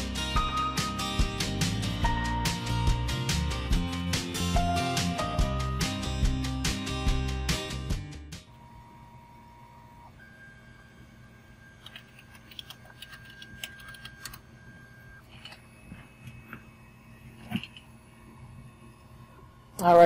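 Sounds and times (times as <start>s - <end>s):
low steady hum: 8.4s - 20.0s.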